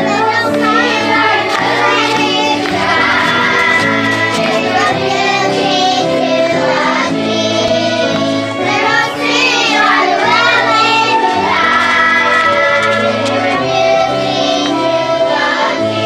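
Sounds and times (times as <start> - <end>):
musical accompaniment: 0.0 - 16.0
young children singing: 0.0 - 16.0.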